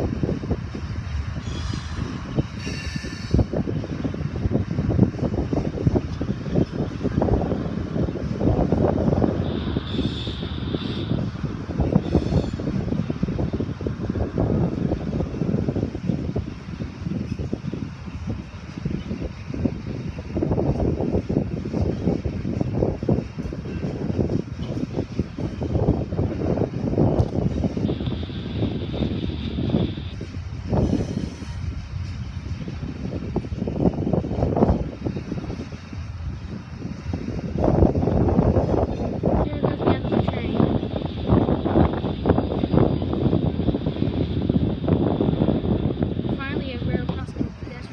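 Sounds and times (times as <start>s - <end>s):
freight train rumbling and clattering: 0.0s - 44.2s, 45.0s - 47.9s
wind buffeting microphone: 0.0s - 47.9s.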